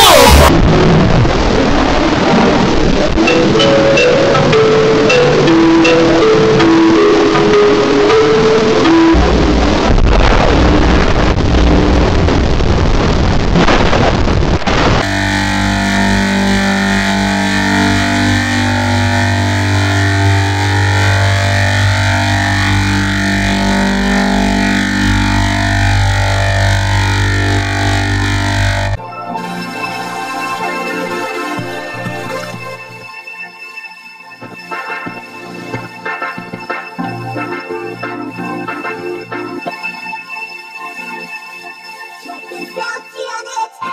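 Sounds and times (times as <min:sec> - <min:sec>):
low hum: 0:00.0 - 0:29.0
harsh noise: 0:00.0 - 0:29.8
distorted held notes: 0:00.0 - 0:33.1, 0:34.4 - 0:41.3
warbling drone: 0:00.0 - 0:33.1.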